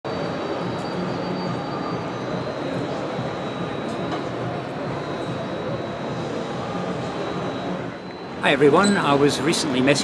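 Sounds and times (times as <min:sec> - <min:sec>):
town bustle: 0:00.1 - 0:10.0.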